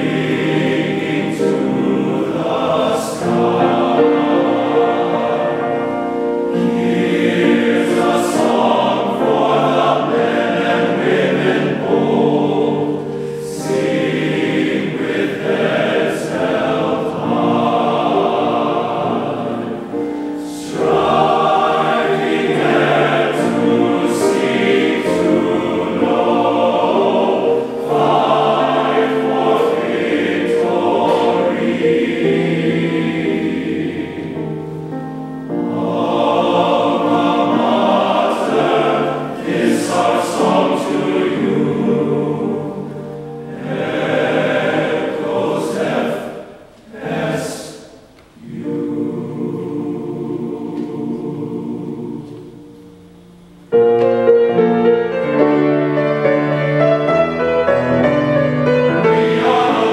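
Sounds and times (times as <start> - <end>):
male choir singing in harmony: 0.0 - 59.9.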